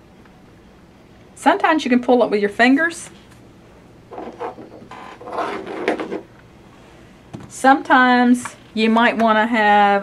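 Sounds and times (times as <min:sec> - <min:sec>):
rubber rubbing scrapes: 0:04.1 - 0:06.3.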